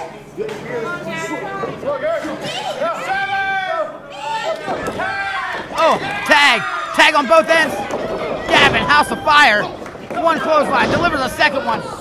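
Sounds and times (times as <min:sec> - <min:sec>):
spectators shouting: 0:02.7 - 0:12.0.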